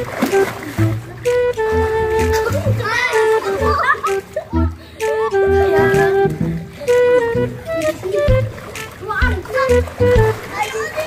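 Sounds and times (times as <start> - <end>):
flute-like background music: 0.0 - 11.0
pool water splashing: 0.0 - 11.0
children shouting and laughing: 0.4 - 11.0.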